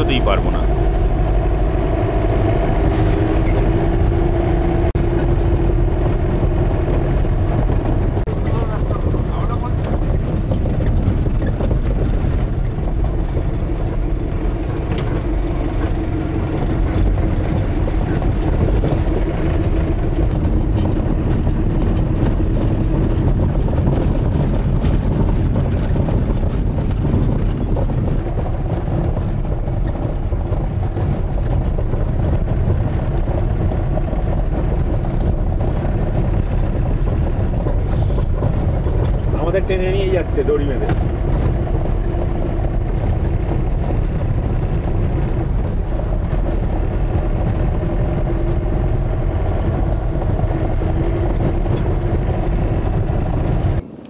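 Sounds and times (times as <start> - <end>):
rattles and knocks: 0.0 - 54.0
road noise on gravel: 0.0 - 54.0
vehicle engine drone: 0.0 - 54.0.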